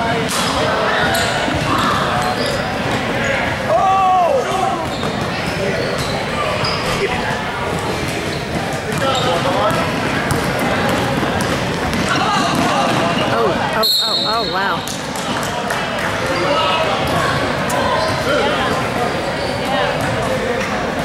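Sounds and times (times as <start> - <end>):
voices echoing in hall: 0.0 - 21.0
sneakers squeaking: 0.5 - 3.6, 4.3 - 21.0.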